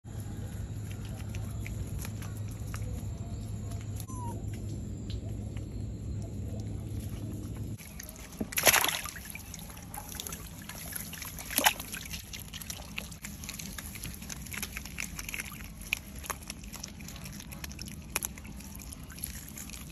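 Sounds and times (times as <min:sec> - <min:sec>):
low rumble: 0:00.1 - 0:07.8
otter sloshing water: 0:06.3 - 0:19.9
water splashes: 0:07.8 - 0:19.9.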